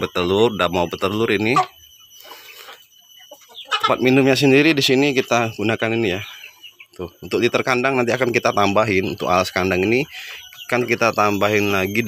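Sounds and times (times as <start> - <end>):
hen clucking softly: 1.4 - 4.4.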